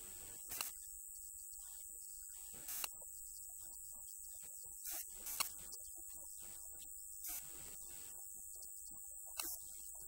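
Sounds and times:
low electrical hum: 0.0 - 10.0
click: 8.6 - 9.6.

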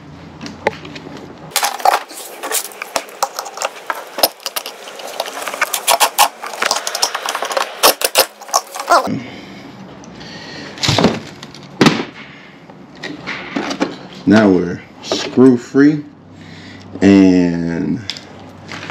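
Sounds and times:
metal clicks and scrapes: 1.5 - 9.1.

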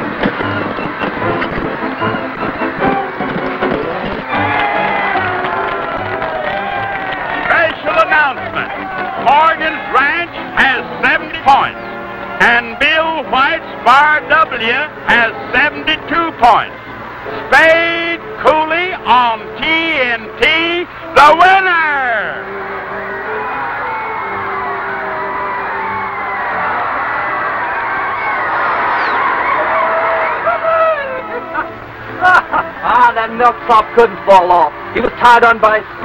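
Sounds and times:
crowd cheering: 0.0 - 36.0.

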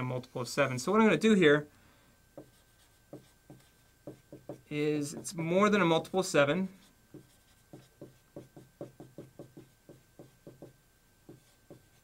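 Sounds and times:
marker writing on whiteboard: 2.4 - 6.2, 7.1 - 12.0.

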